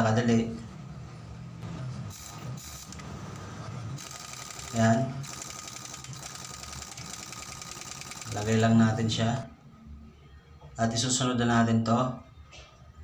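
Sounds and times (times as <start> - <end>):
pneumatic wrench rattling: 2.1 - 3.0, 4.0 - 8.6.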